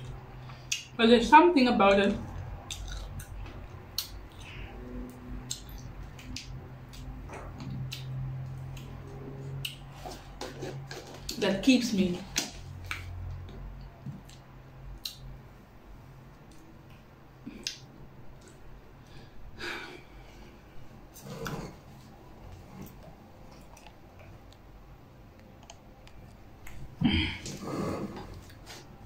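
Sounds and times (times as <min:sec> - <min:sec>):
mouth clicks and smacks: 0:05.4 - 0:08.8.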